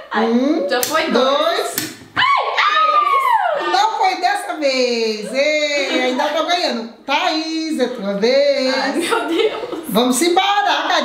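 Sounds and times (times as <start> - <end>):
woman squealing: 2.2 - 3.8.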